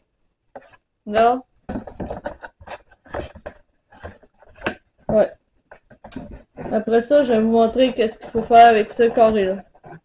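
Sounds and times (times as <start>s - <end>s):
cardboard box handled: 1.7s - 4.8s.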